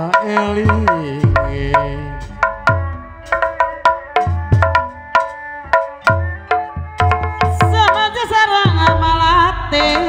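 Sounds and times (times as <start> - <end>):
hand drum strokes: 0.0 - 10.0
struck metallophone notes: 0.0 - 10.0.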